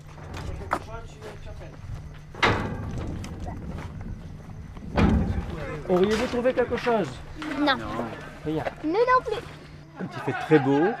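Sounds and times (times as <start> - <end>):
low background rumble: 2.0 - 5.9
knocks and thuds: 2.3 - 7.0.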